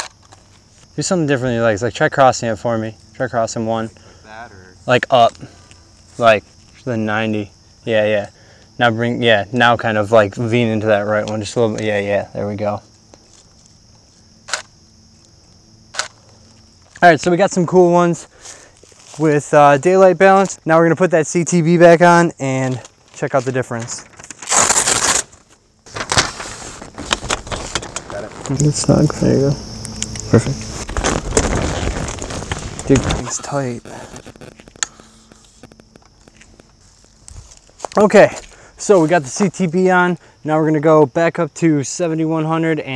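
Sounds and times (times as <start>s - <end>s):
faint insect buzz: 0.0s - 42.9s
footsteps on leaf litter: 18.3s - 19.4s, 36.2s - 38.5s.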